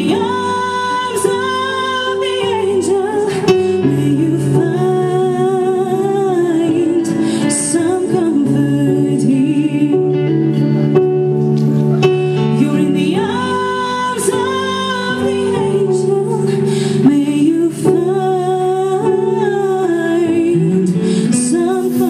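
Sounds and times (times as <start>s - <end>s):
guitar and band accompaniment: 0.0s - 17.3s
woman singing a ballad: 0.0s - 22.0s.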